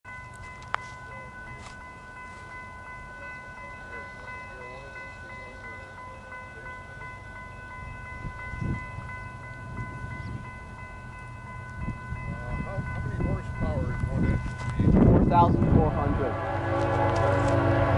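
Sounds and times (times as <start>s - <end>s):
freight train rumble: 0.1s - 17.9s.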